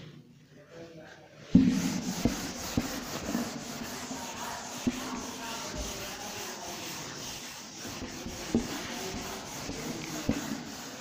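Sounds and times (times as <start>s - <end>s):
eraser rubbing on whiteboard: 1.6s - 11.0s.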